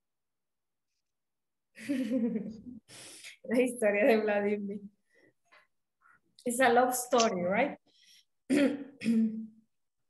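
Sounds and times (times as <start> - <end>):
person clearing throat: 8.5 - 9.6.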